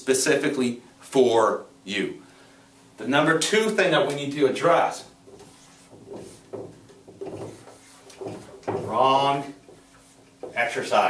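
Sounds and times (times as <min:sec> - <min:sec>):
marker writing on whiteboard: 0:05.3 - 0:11.0.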